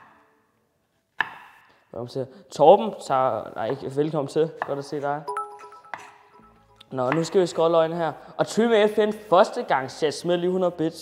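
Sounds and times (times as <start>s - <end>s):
knife chopping on wooden board: 1.2s - 1.6s.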